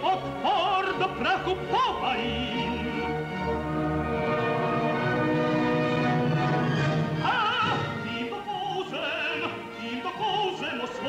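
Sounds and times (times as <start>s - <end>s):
orchestra playing held chords: 0.0s - 11.0s.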